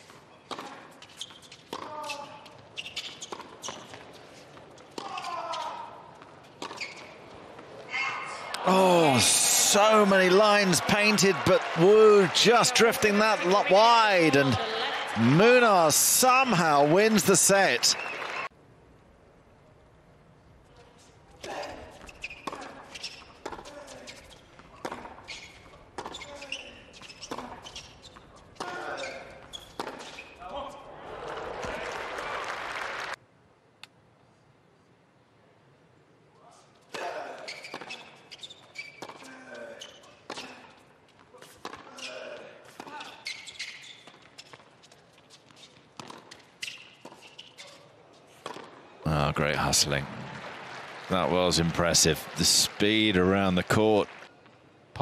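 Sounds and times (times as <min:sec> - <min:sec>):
shoes squeaking on court: 0:00.0 - 0:07.9, 0:21.0 - 0:30.9, 0:36.8 - 0:48.9
crowd noise: 0:07.2 - 0:18.5, 0:47.9 - 0:55.0
players grunting: 0:08.6 - 0:17.9
tennis ball bouncing: 0:46.0 - 0:46.4, 0:48.4 - 0:48.8.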